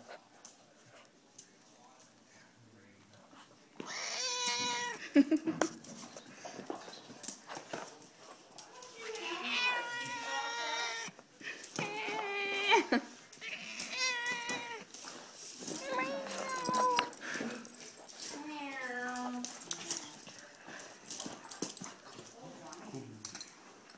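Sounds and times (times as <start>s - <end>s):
cat meowing: 3.8s - 5.0s, 9.0s - 11.1s, 13.4s - 14.9s.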